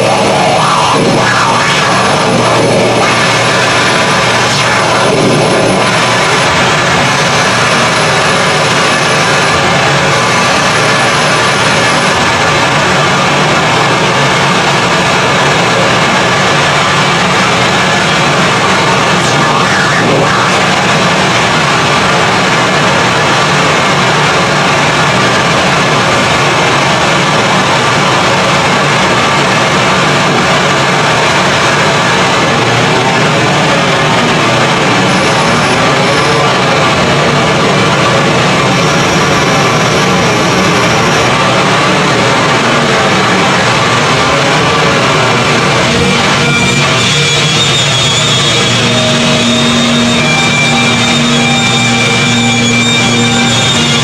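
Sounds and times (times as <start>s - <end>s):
distorted static noise: 0.0s - 54.0s.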